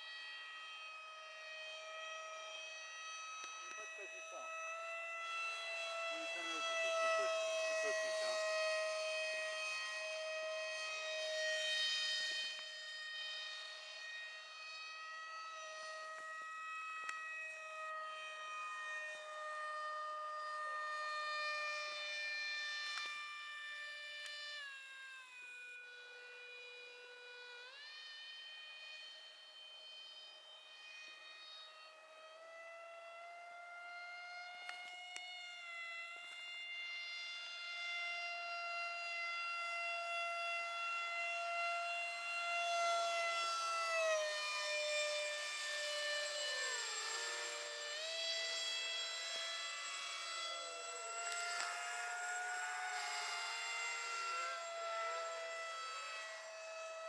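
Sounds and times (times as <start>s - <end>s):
electric motor and propeller whine: 0.0s - 57.0s.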